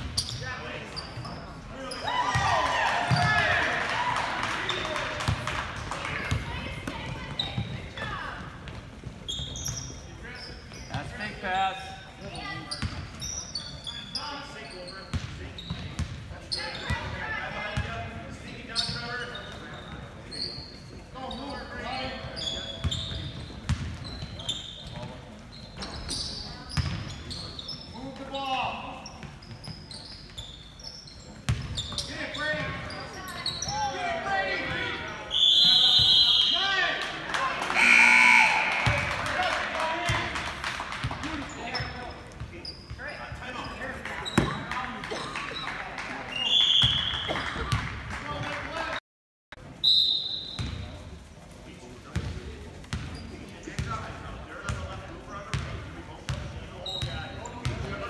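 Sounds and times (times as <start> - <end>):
loud shout: 2.0 - 4.6, 37.6 - 39.4
people calling out and talking: 32.1 - 40.4
shrill high tone: 37.8 - 38.8.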